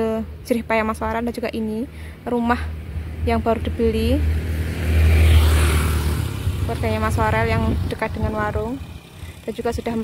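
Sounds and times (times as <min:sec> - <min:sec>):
vehicle passing by: 0:02.6 - 0:10.0.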